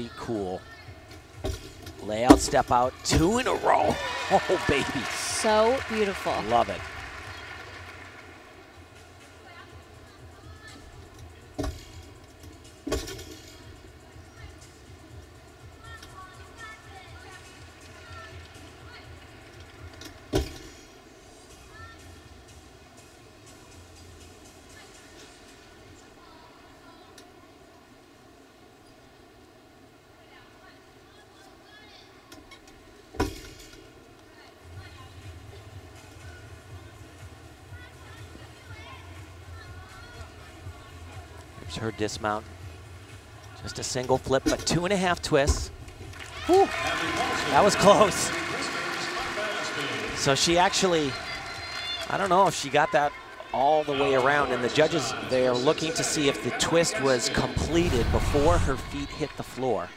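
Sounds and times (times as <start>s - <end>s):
arena crowd murmur: 3.0s - 11.6s.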